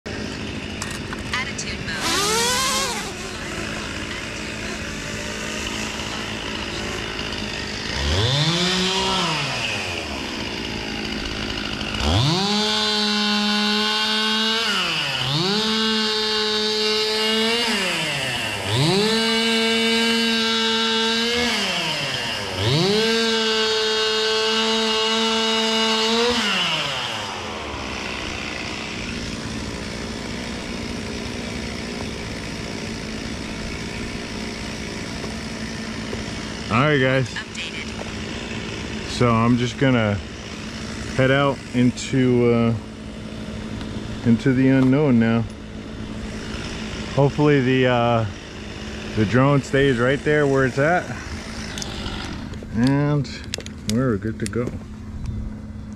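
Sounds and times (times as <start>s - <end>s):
chainsaw revving: 0.1s - 55.8s.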